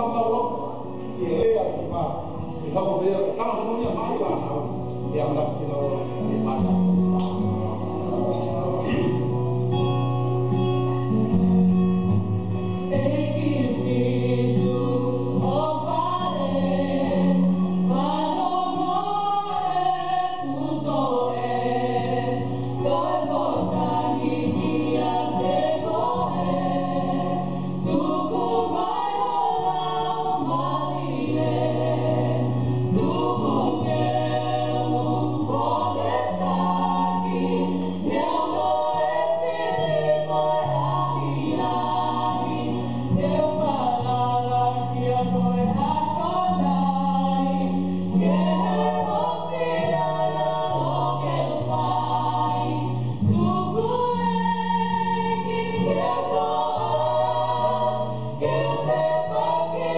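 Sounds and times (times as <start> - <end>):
female vocal trio singing hymn: 0.0 - 9.5, 11.1 - 59.9.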